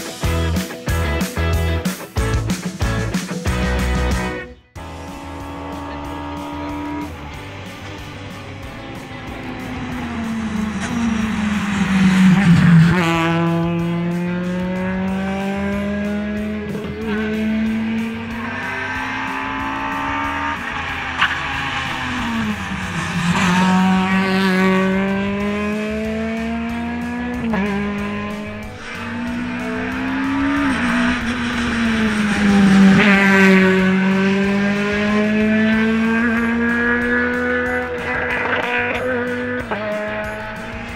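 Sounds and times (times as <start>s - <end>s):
rally car engine revving: 2.3s - 40.9s.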